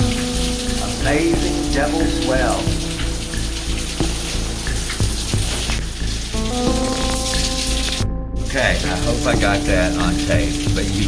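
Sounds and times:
sustained musical notes: 0:00.0 - 0:11.0
water dripping and trickling: 0:00.0 - 0:11.0.

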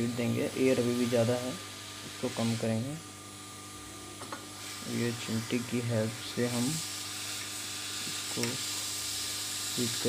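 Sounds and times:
hot air blower hissing: 0:00.0 - 0:10.0.

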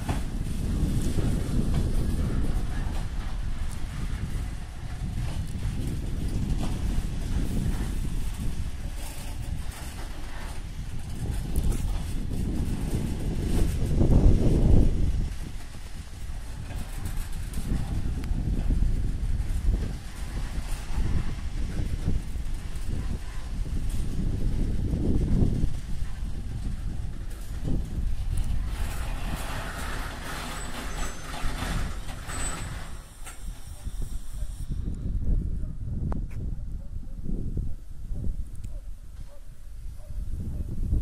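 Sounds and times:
freight train wagons rolling on rails: 0:00.0 - 0:35.0.

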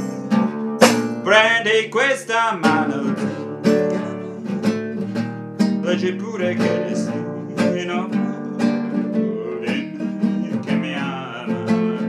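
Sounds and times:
man singing: 0:00.0 - 0:00.5, 0:01.2 - 0:12.0
acoustic guitar strumming: 0:00.0 - 0:12.0.

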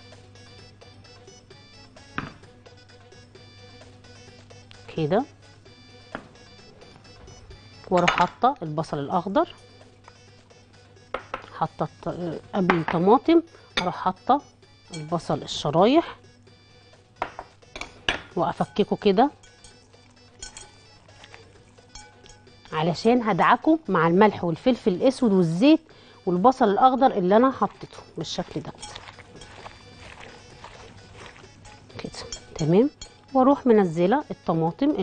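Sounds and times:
faint background music: 0:00.0 - 0:35.0
wet squishing of onion slices: 0:21.0 - 0:21.6, 0:28.4 - 0:32.5.

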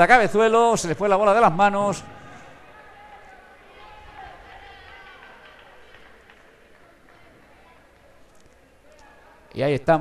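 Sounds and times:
handball match in indoor hall: 0:00.0 - 0:09.6
distant echoing voices: 0:01.8 - 0:09.5.

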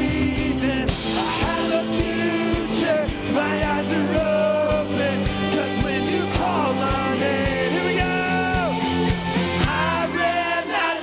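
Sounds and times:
electric guitar: 0:00.0 - 0:11.0
keyboard: 0:00.0 - 0:11.0
person singing: 0:00.0 - 0:11.0.

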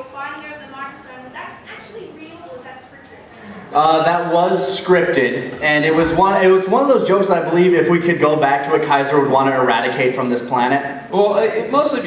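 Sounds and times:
panel talk into microphones: 0:00.0 - 0:12.0.

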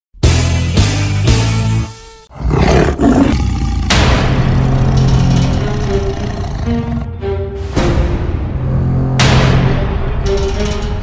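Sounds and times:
big cat roaring: 0:02.3 - 0:07.1.

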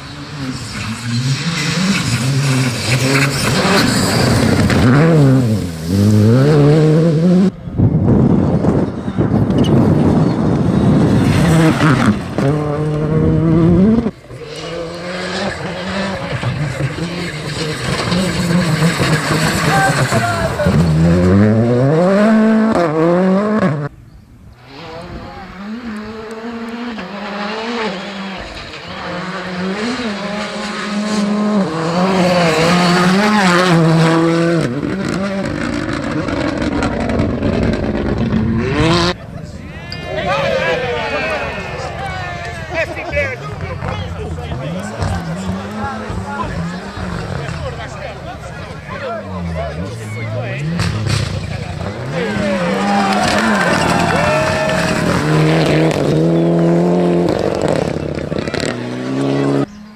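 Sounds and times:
rally car engines revving hard: 0:00.0 - 0:23.9, 0:24.6 - 0:59.9.

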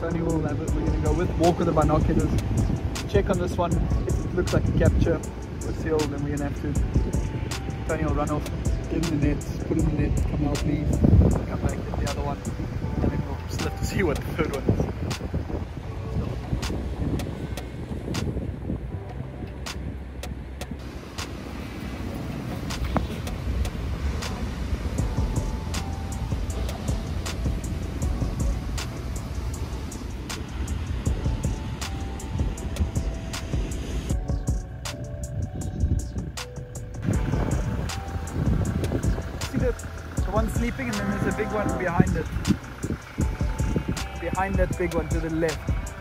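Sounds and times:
low steady rumble: 0:14.6 - 0:46.0
ticking percussion: 0:22.5 - 0:46.0.

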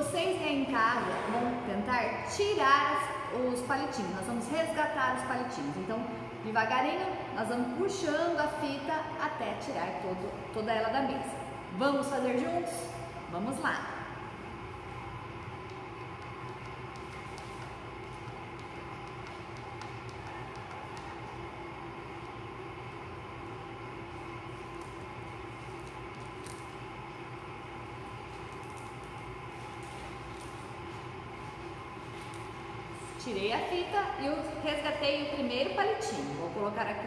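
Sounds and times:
steady room hum: 0:00.0 - 0:37.0
tape peeling crackles: 0:15.4 - 0:22.4, 0:24.2 - 0:33.2.

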